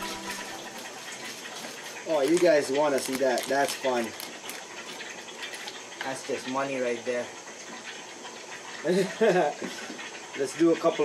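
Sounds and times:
aquarium water hiss: 0.0 - 11.0.

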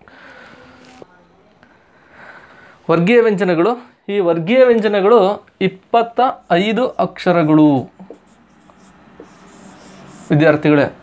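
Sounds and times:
marker pen scratching on whiteboard: 6.3 - 10.6.

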